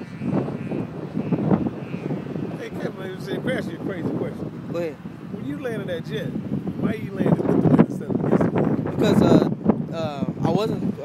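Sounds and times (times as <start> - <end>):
wind gusting on microphone: 0.0 - 11.0.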